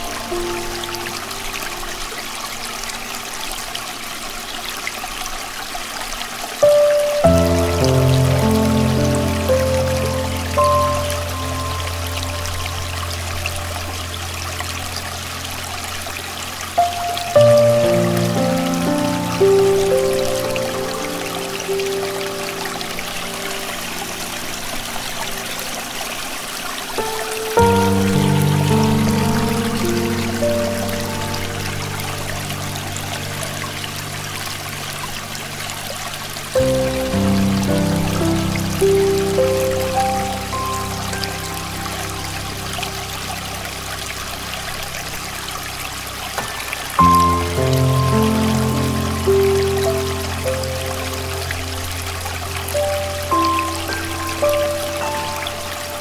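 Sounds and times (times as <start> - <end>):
soft piano music: 0.0 - 56.0
stream water running: 0.0 - 56.0.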